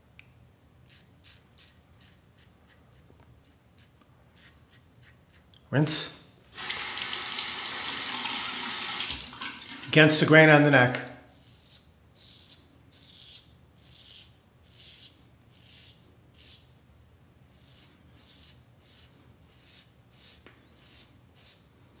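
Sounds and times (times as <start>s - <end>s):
razor scraping stubble: 0.8s - 5.6s, 11.3s - 16.7s, 17.5s - 22.0s.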